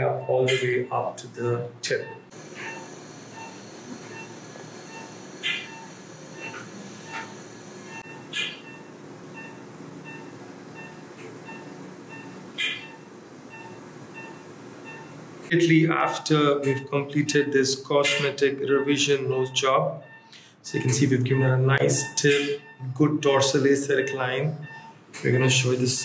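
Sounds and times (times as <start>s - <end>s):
equipment hum: 0.0s - 26.0s
patient monitor beeping: 0.0s - 26.0s.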